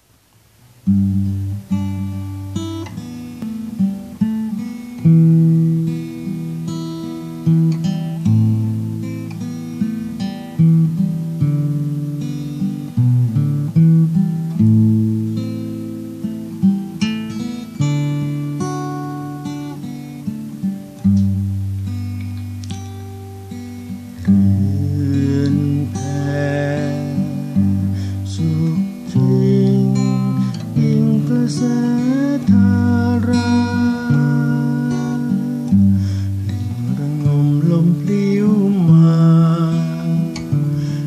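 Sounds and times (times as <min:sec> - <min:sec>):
acoustic guitar picked chords: 0:00.0 - 0:41.0.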